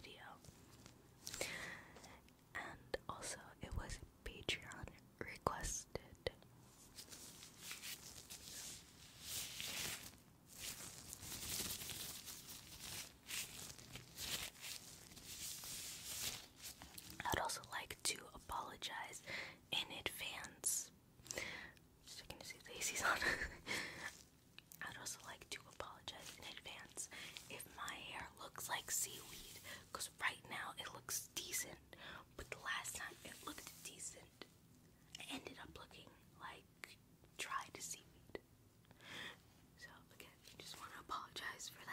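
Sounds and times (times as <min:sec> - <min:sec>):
soft whispering: 0:00.0 - 0:10.0, 0:15.4 - 0:21.0, 0:21.6 - 0:38.5, 0:39.8 - 0:41.9
latex gloves rustling: 0:06.7 - 0:17.3, 0:25.7 - 0:27.7.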